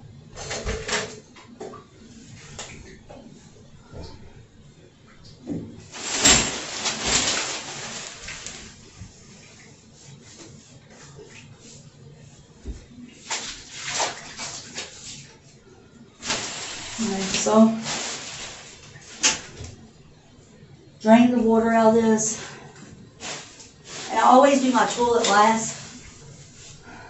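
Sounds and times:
rubbing and splashing water: 5.9s - 15.6s, 16.2s - 19.8s, 23.2s - 26.9s.

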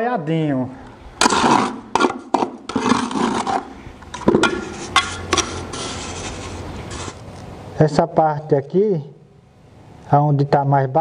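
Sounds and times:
trowel scraping mortar: 1.2s - 7.2s.

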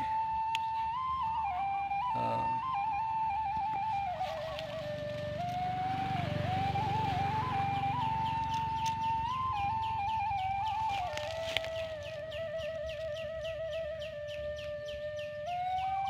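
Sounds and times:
flute-like melody: 0.0s - 16.0s.

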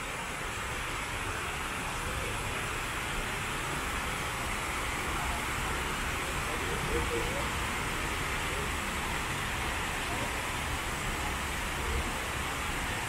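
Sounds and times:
water falling into pool: 0.0s - 13.0s.

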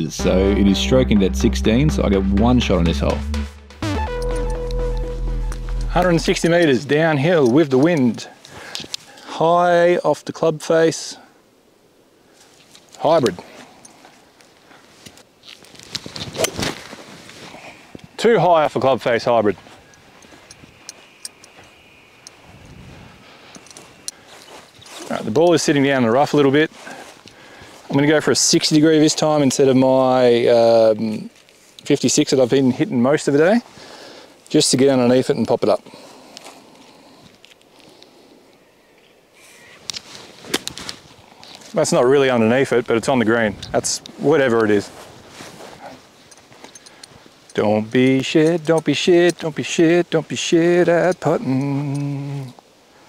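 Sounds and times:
quiet outdoor background: 0.0s - 53.0s.

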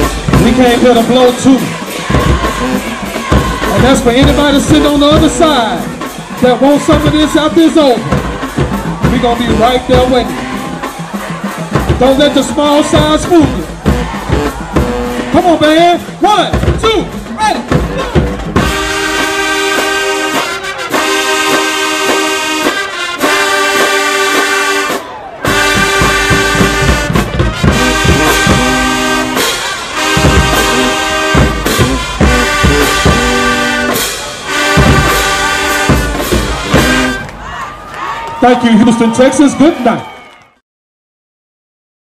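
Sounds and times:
brass and woodwind chords: 0.0s - 16.4s, 17.0s - 37.5s
marching band playing: 0.0s - 40.0s
drums: 0.0s - 40.2s.

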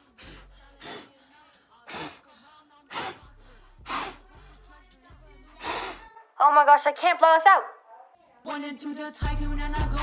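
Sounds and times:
puffs of breath blowing: 0.0s - 4.7s, 5.6s - 6.1s.

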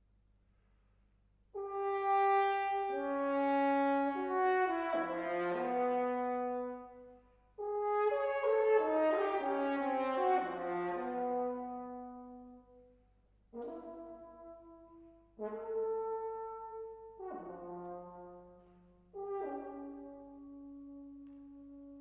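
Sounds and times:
solo french horn: 1.5s - 22.0s.

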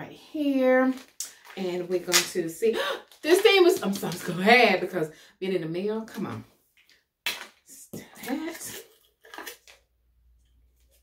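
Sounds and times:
plastic bottle rustling: 8.3s - 9.9s.

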